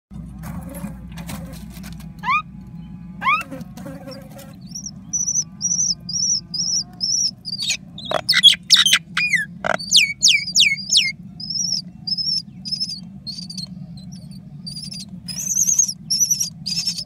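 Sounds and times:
nestling high chirps: 0:04.6 - 0:17.0
nestling loud rising calls: 0:04.7 - 0:17.0.

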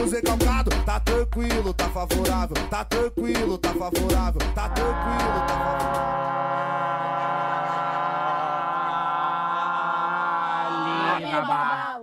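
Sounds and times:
group chanting long note: 0:04.7 - 0:12.0.

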